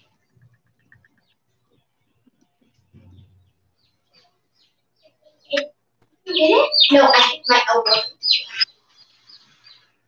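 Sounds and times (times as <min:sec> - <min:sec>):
bird chirping: 0:00.0 - 0:10.0.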